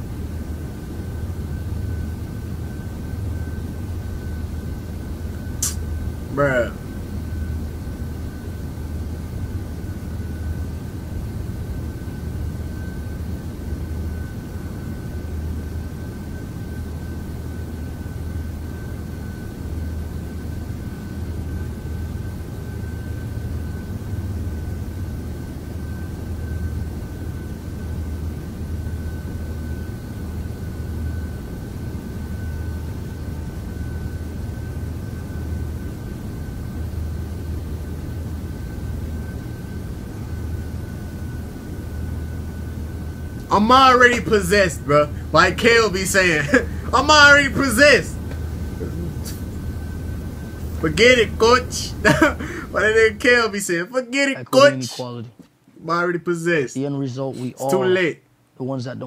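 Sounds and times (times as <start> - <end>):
thin high tone: 43.5 - 48.2, 50.8 - 55.3, 57.4 - 58.2
low rumbling drone: 44.9 - 47.0, 48.1 - 51.0.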